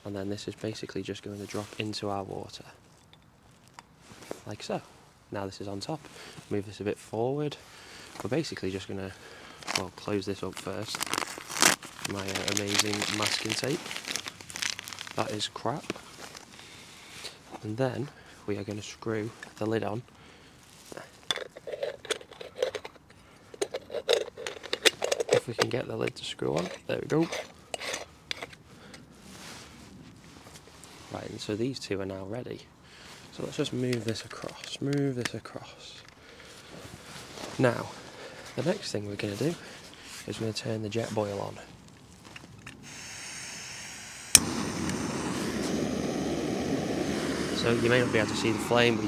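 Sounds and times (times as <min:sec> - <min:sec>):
metal clinks and scrapes: 0:21.1 - 0:28.6
gas burner rushing: 0:42.8 - 0:49.0
gas valve hissing: 0:42.8 - 0:49.0.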